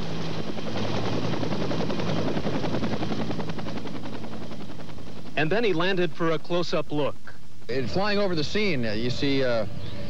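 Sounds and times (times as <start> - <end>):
helicopter rotor beating: 0.0 - 10.0.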